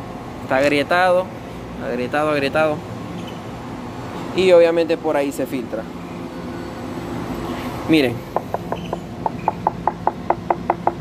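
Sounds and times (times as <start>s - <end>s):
rapid knocking on hollow tile: 8.3s - 11.0s.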